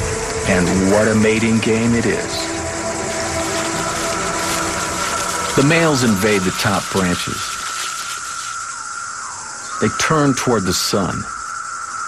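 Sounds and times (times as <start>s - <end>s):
cicadas droning buzz: 0.0s - 12.0s.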